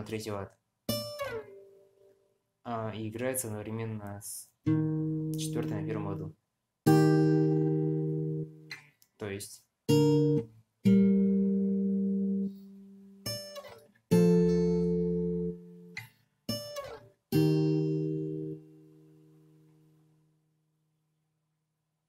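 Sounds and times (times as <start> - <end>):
acoustic guitar fingerstyle chords: 0.0 - 9.0, 9.8 - 20.6.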